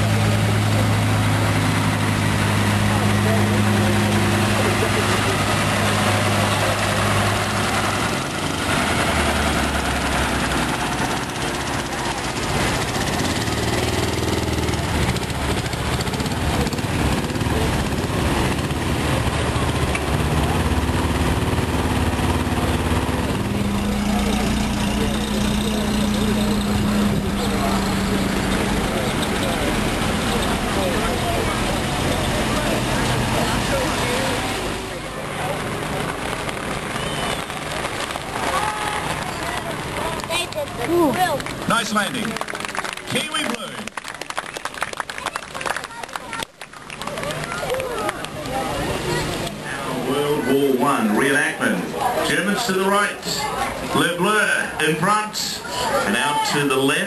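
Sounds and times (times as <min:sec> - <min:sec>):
military vehicle engines passing: 0:00.0 - 0:57.0.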